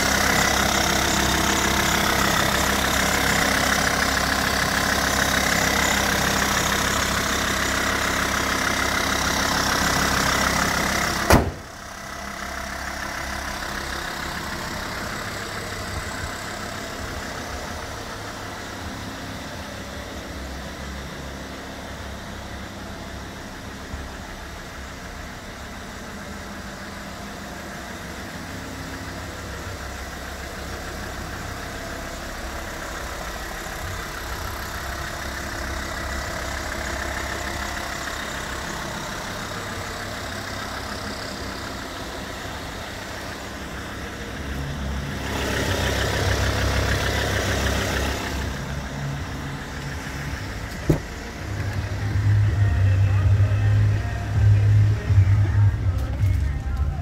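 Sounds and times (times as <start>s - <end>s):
diesel engine idling: 0.0s - 57.0s
car bonnet slamming shut: 11.2s - 11.7s, 50.6s - 51.3s.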